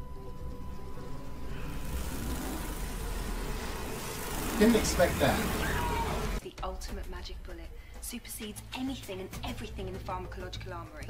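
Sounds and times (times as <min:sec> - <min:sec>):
steady rushing noise: 0:01.6 - 0:06.4.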